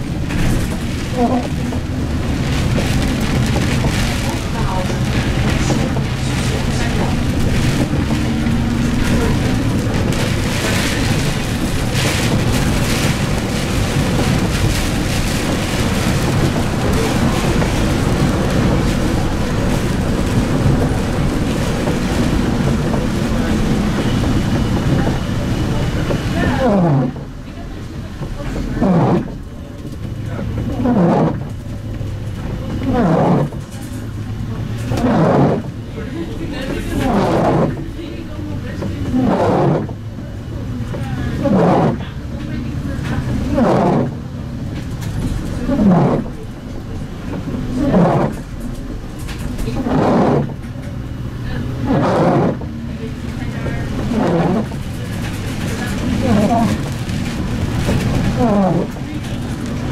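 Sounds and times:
bus engine running: 0.0 - 59.9.

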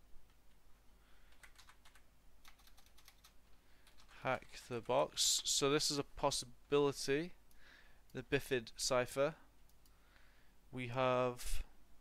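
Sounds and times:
typing on computer keyboard: 1.3 - 4.2.

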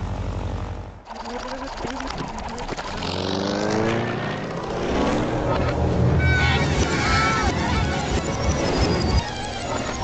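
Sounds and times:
cartoon motor rattle and whine: 1.0 - 5.5.

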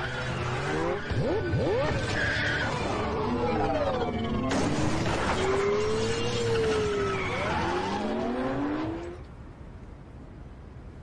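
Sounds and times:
squealing gliding tones: 0.0 - 9.2.

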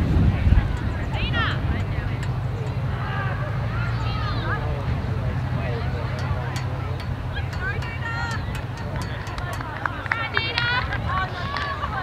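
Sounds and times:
steady low rumble: 0.0 - 12.0
distant high-pitched shouted calls: 1.0 - 4.7.

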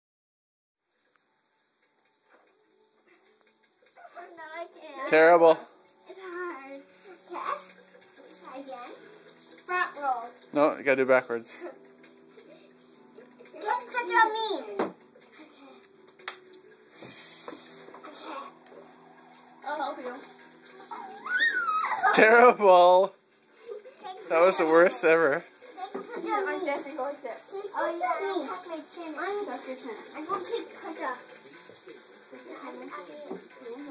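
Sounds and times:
high voice drawn-out cry: 20.9 - 22.2.

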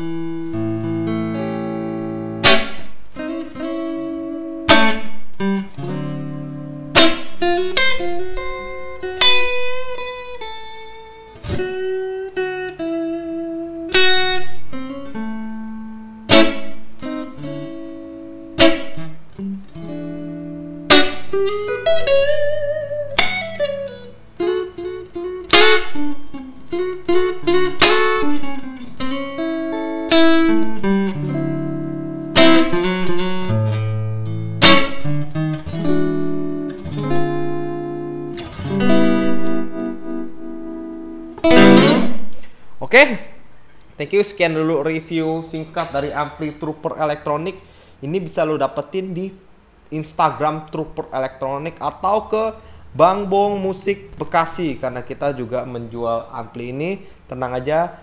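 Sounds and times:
clean electric guitar: 0.0 - 44.1.

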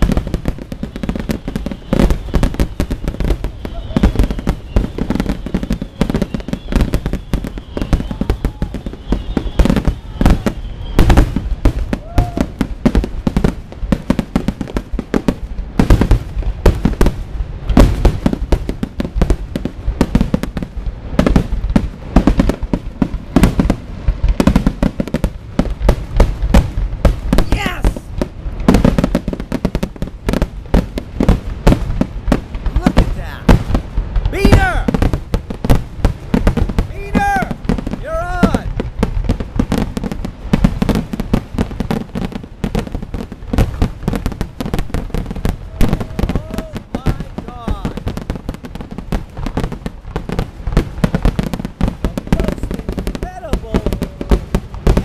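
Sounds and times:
fireworks booming and crackling: 0.0 - 55.0.

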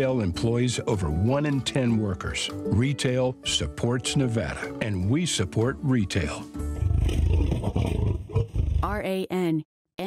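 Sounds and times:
tiger growl: 6.6 - 9.0.

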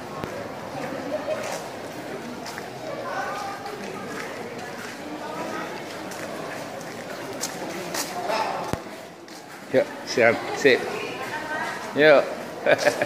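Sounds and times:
murmur of conversation: 0.0 - 13.0.

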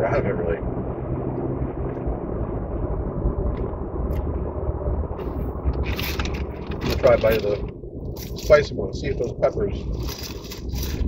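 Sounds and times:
car engine rumble from inside: 0.0 - 11.0.

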